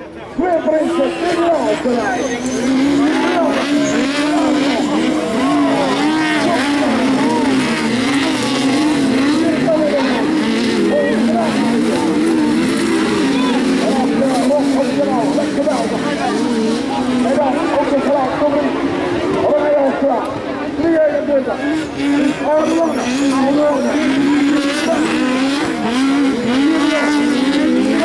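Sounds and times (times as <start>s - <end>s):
racing buggy engines revving: 0.0s - 28.0s.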